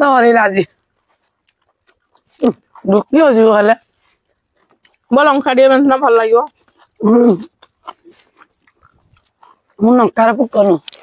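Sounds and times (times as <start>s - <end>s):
people eating by hand: 0.0s - 11.0s.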